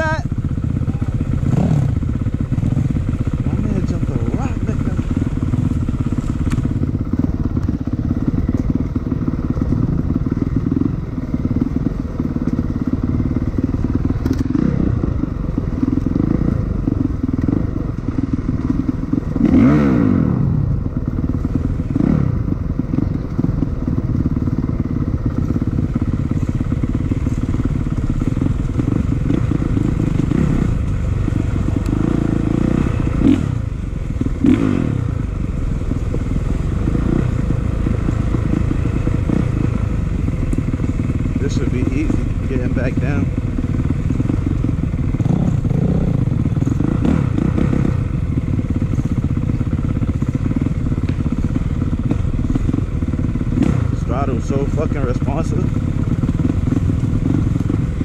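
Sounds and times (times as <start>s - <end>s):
dirt bike engine revving: 0.0s - 58.0s
bike knocking and rattling: 0.2s - 19.7s, 20.9s - 34.6s, 35.3s - 58.0s.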